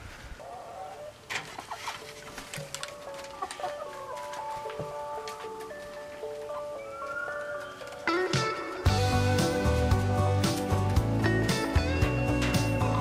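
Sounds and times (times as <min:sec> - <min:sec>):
hens clucking: 0:00.4 - 0:13.0
instrumental background music: 0:01.8 - 0:13.0.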